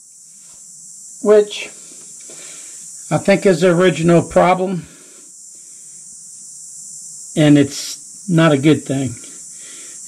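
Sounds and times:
steady high-pitched hiss: 0.0 - 10.0.

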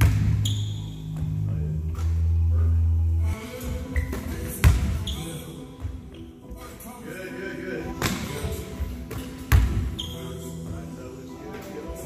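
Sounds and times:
basketball bouncing on gym floor: 0.0 - 1.4, 4.0 - 5.2, 8.0 - 10.1.

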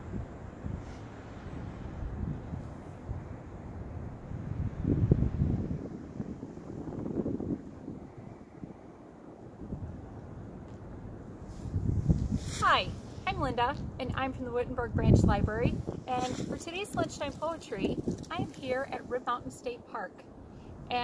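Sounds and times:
wind buffeting microphone: 0.0 - 19.5.

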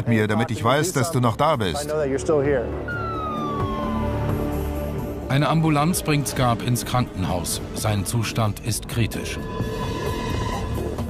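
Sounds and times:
man's voice: 0.0 - 2.8, 5.2 - 9.4
background music: 0.0 - 11.0
ambulance siren wailing: 2.7 - 6.9.

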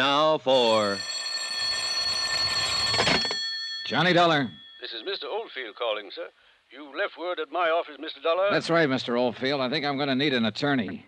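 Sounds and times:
telephone bell ringing: 0.6 - 5.4.

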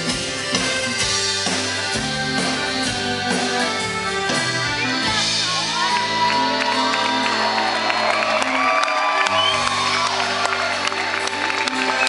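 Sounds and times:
accordion chords: 0.0 - 12.0.

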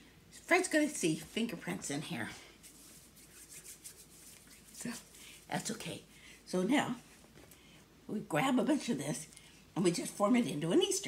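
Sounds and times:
hands rubbing together: 2.6 - 5.5.

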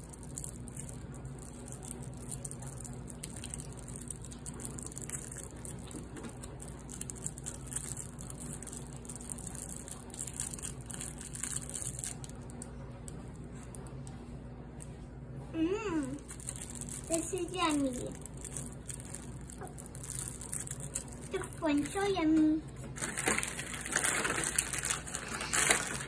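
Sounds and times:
cellophane wrapper crinkling: 0.0 - 13.9, 16.1 - 22.2, 22.8 - 26.0
steady low hum: 0.0 - 26.0.

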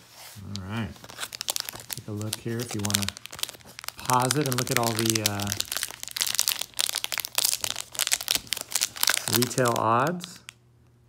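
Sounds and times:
plastic wrapper crinkling: 0.4 - 10.6.

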